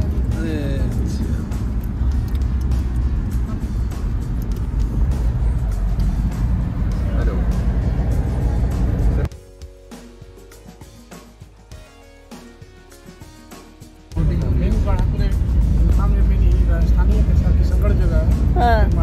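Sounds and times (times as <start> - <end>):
car road and engine rumble: 0.0 - 9.3, 14.2 - 19.0
quiet background music: 0.0 - 19.0.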